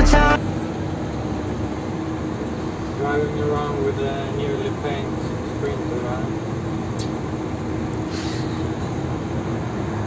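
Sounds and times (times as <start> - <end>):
road and engine rumble: 0.0 - 10.0
short hiss: 8.1 - 8.6.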